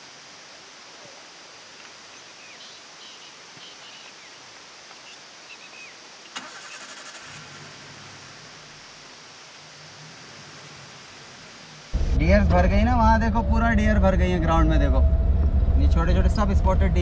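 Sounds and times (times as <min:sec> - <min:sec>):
steady hiss: 0:00.0 - 0:12.8
faint bird chirps: 0:01.8 - 0:06.4
engine starter cranking: 0:06.4 - 0:07.6.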